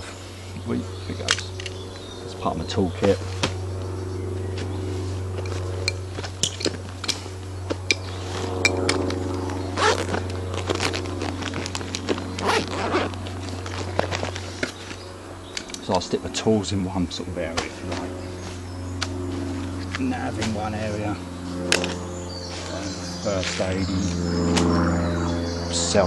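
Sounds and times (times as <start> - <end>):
steady low hum: 0.0 - 26.0
camping gear rustling and clicking: 3.3 - 15.9
zippers: 8.0 - 15.0.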